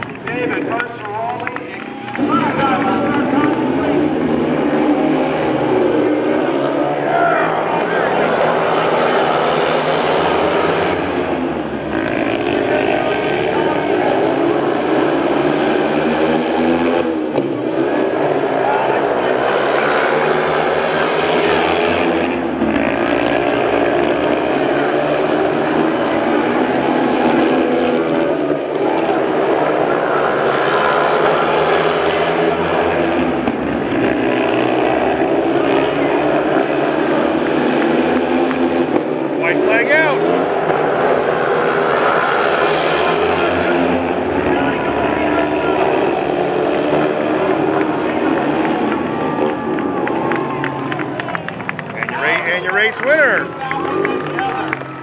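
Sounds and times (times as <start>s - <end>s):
motorcycles racing at full throttle: 0.0s - 55.0s.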